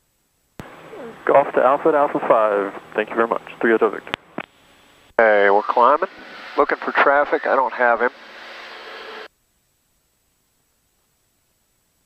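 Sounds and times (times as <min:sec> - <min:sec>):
aircraft engines droning: 0:00.6 - 0:09.3.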